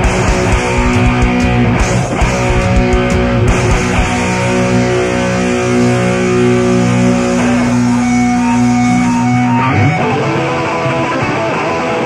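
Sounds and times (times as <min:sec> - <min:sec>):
distorted electric guitar chords: 0:00.0 - 0:12.0
live heavy metal band: 0:00.0 - 0:12.0.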